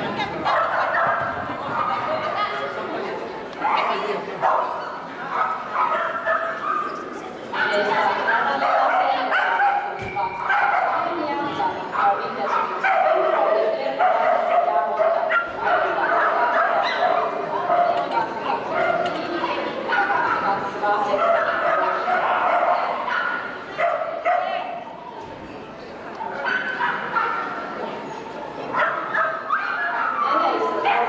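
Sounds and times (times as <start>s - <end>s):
dog barking and yipping: 5.3s - 7.0s.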